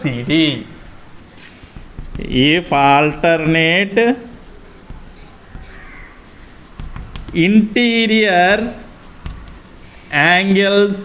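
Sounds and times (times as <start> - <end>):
chalk scratching on chalkboard: 0.3 - 10.5
chalk taps: 0.8 - 10.2.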